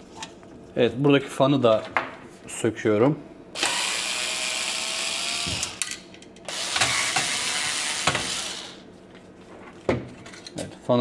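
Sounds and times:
cordless screwdriver whining: 3.6 - 5.8, 6.5 - 8.8.

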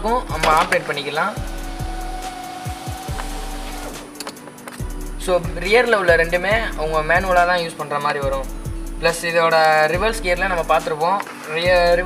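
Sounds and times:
background music: 0.0 - 12.0
power window motor whine: 0.3 - 4.2.

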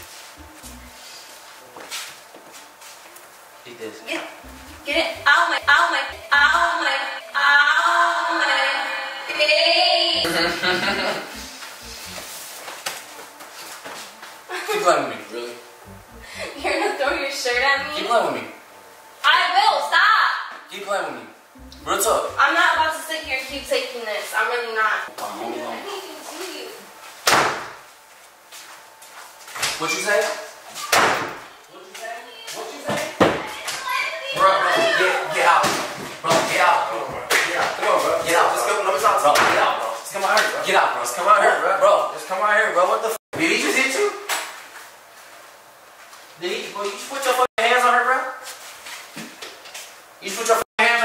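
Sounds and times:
voices shouting in another room: 30.7 - 39.7.

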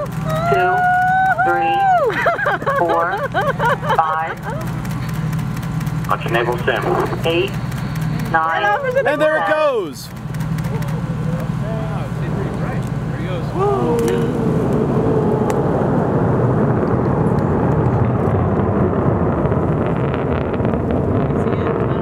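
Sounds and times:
voices calling out: 0.0 - 5.2, 8.2 - 15.0
rocket engine rumble: 0.0 - 22.0.

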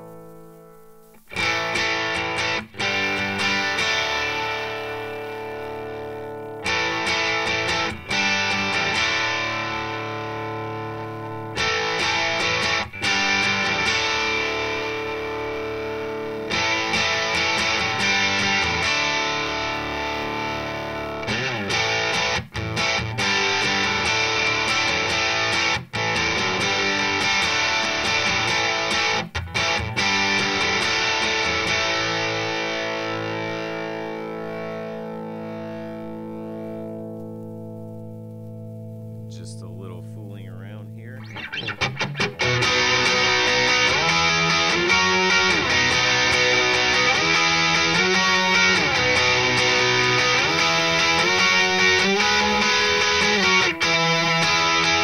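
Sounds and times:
overdriven electric guitar chords: 0.0 - 55.0.

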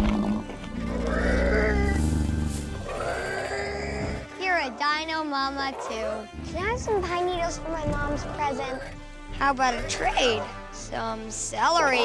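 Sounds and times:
dinosaur bellowing: 0.0 - 4.3
background music: 0.0 - 12.0.

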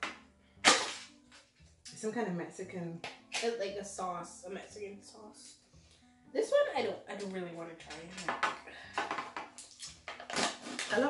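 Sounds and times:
can seal ripping open: 0.6 - 1.2, 3.3 - 3.5, 9.6 - 11.0.

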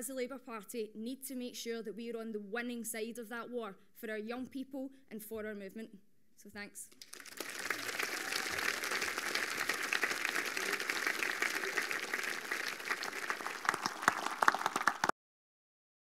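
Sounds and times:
audience applauding: 7.0 - 15.1
loud single claps: 7.0 - 15.1.

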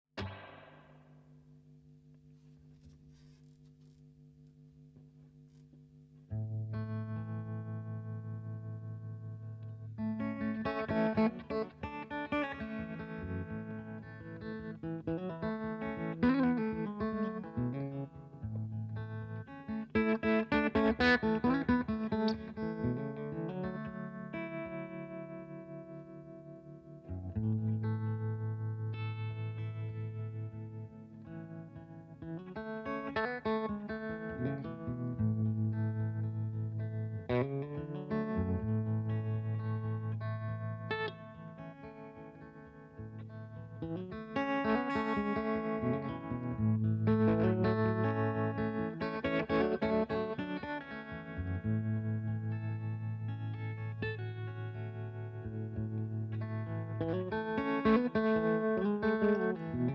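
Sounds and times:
electric guitar playing: 0.0 - 1.3, 6.3 - 59.9.

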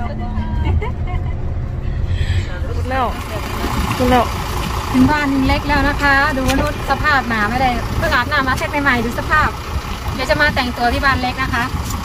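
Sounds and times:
car engine idling: 0.0 - 12.0
woman speaking: 2.4 - 11.8.

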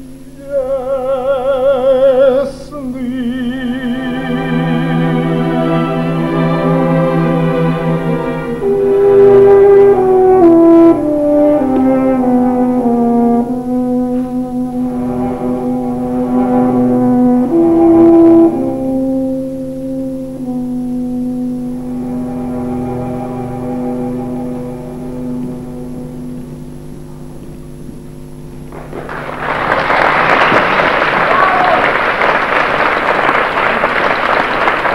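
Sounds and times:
orchestra soft chords: 0.0 - 30.0
audience applauding loudly: 28.7 - 34.9.

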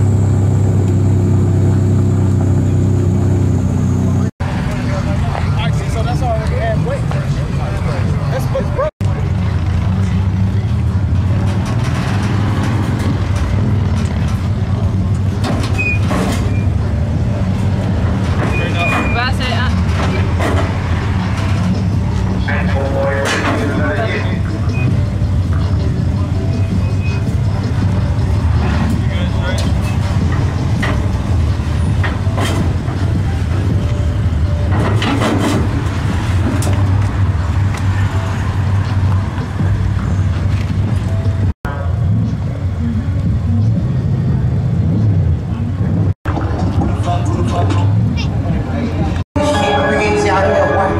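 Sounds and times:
truck engine low rumble: 0.0 - 49.2.

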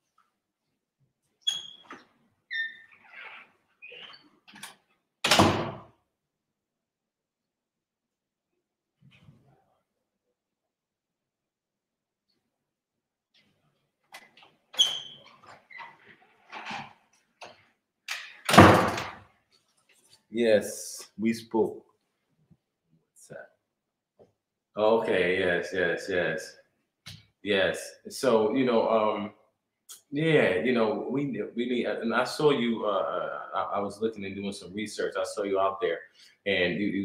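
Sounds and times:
squeaks and clicks: 1.4 - 4.8, 14.1 - 17.0
door banging shut: 5.2 - 5.9, 18.5 - 19.2.

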